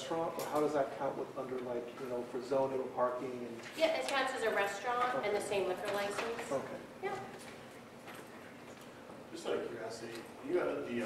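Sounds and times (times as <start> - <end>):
woman speaking: 3.7 - 7.4.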